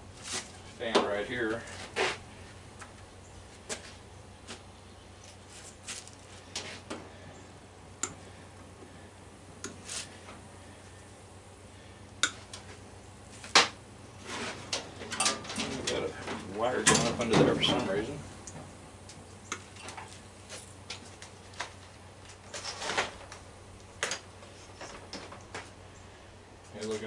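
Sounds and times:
wires scraping on sheet metal: 14.2 - 16.1.

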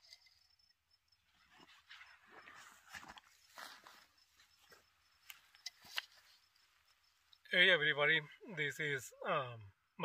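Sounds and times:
person shifting on dry grass: 1.2 - 6.9.

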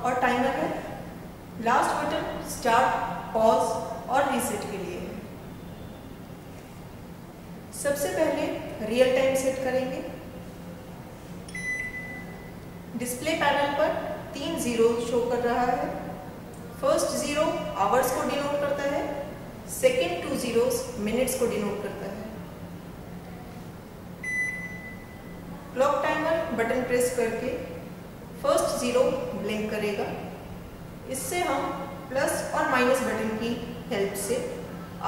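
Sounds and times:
long high microwave beep: 5.5 - 6.2, 11.5 - 12.8, 24.2 - 25.5.

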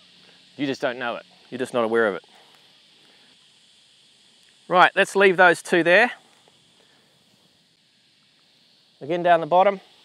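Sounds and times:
faint outdoor background hiss: 0.0 - 10.0.

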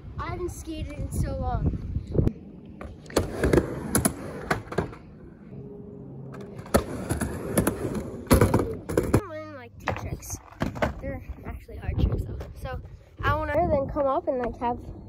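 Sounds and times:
skateboard rolling on ramp: 2.8 - 5.2, 6.2 - 11.3.

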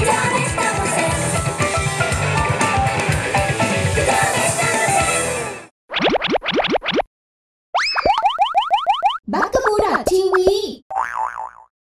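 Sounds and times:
warbling tone: 7.8 - 9.2.

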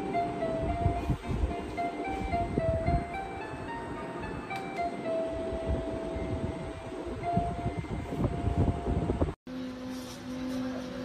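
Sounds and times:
steady low hum: 0.0 - 11.0
crib mobile chiming lullaby: 1.6 - 6.6.

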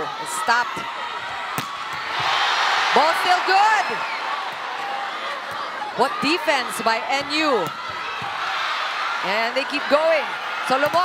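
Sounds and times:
arena crowd cheering: 0.0 - 11.0
volleyball being hit: 1.5 - 2.4, 7.2 - 8.4, 10.7 - 11.0.

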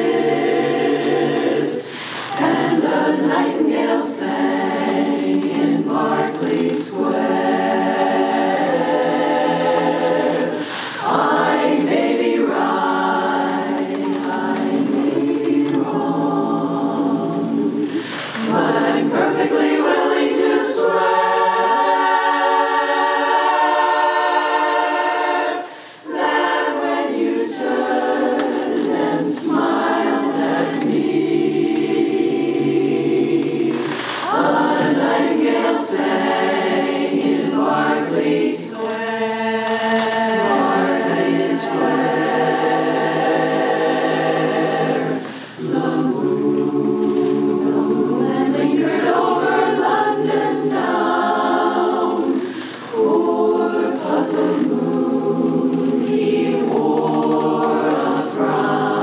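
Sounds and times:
women's chorus singing a cappella: 0.0 - 59.0.

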